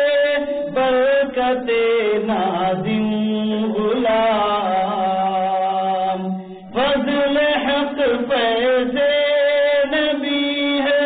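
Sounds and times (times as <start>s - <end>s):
man singing melismatic chant: 0.0s - 11.0s.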